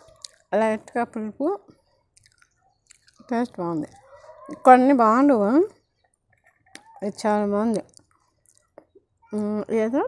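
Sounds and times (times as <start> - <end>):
woman speaking: 0.5 - 1.7, 3.2 - 5.8, 6.9 - 8.0, 9.3 - 10.0.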